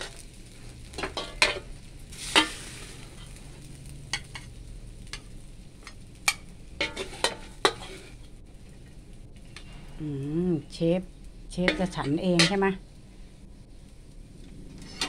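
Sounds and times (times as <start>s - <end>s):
metal spatula scraping a wok: 0.0s - 8.3s, 11.6s - 12.8s, 14.8s - 15.0s
rice sizzling in a wok: 0.0s - 15.0s.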